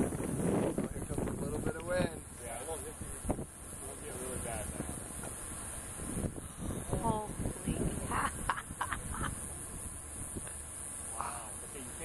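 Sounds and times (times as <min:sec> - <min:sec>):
high hiss: 0:00.0 - 0:12.0
voices talking quietly: 0:00.6 - 0:12.0.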